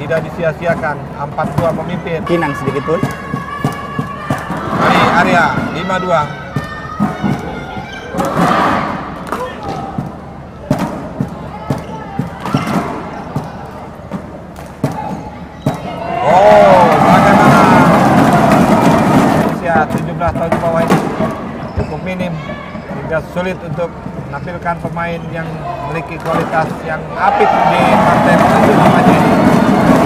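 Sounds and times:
crowd cheering and shouting: 0:02.0 - 0:10.5, 0:14.8 - 0:20.8, 0:25.3 - 0:30.0.

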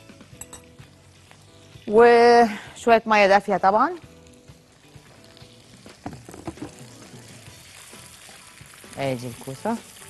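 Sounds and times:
soft background music: 0:00.0 - 0:10.0
vegetables sizzling in frying pan: 0:00.1 - 0:10.0.

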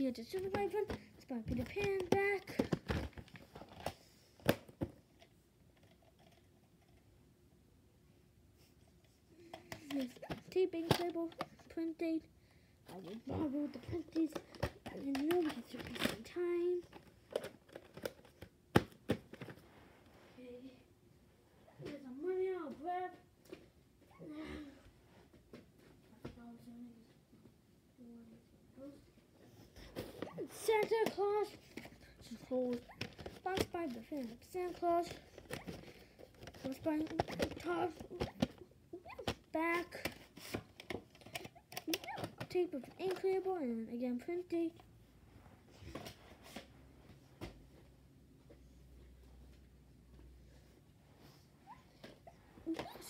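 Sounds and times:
plastic tape cases clicking: 0:09.5 - 0:11.5, 0:13.0 - 0:19.6, 0:32.6 - 0:43.3.

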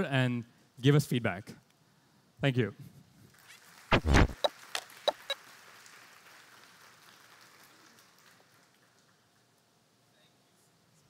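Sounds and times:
faint audience applause: 0:03.3 - 0:09.6.

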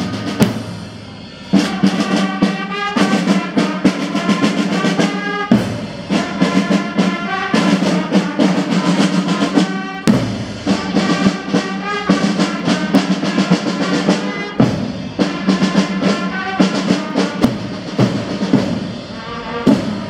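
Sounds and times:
marching band playing: 0:00.0 - 0:20.0
marching drum strokes: 0:00.0 - 0:20.0.

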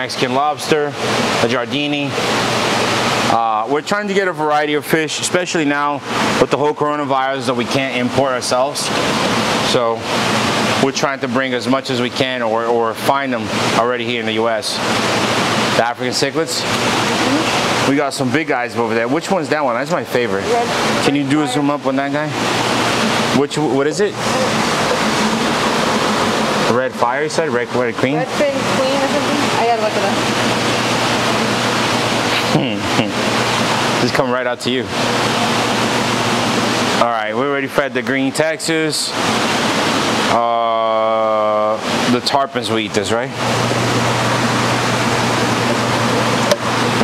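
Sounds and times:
aquarium water rushing: 0:00.0 - 0:47.0
person speaking: 0:16.0 - 0:18.0, 0:18.7 - 0:22.4, 0:23.2 - 0:25.1, 0:32.3 - 0:33.2.

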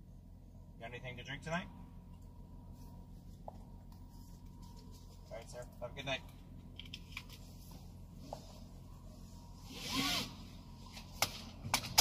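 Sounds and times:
car engine idling hum: 0:00.0 - 0:12.0.

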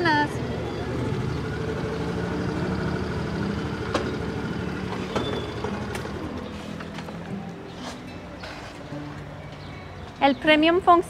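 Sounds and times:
vehicle engine idling: 0:00.0 - 0:07.7.

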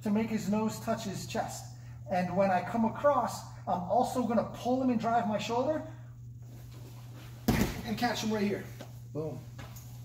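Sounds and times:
heavy thump on foam mat: 0:07.4 - 0:08.0.

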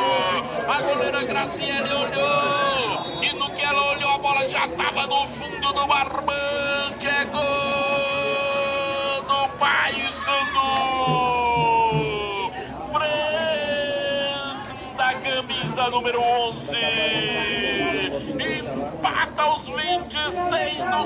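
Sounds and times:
supporters singing and chanting: 0:00.0 - 0:21.0.

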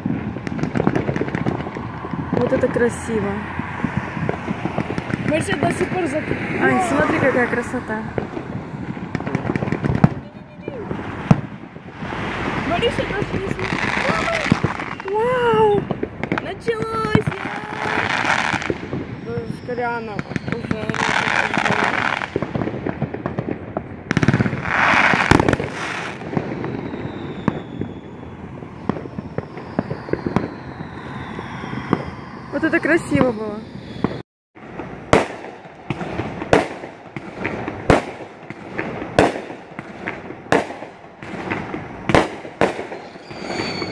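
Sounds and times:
fireworks bangs: 0:00.0 - 0:43.9
fireworks crackling and popping: 0:00.0 - 0:43.9.

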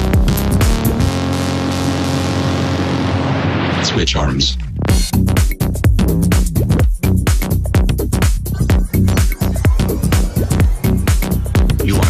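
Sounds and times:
held bass chord: 0:00.0 - 0:03.8, 0:04.6 - 0:12.0
white-noise sweep: 0:00.0 - 0:04.1.

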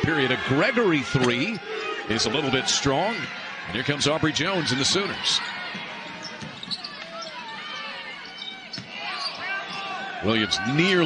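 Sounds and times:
crowd and player voices: 0:00.0 - 0:11.0.

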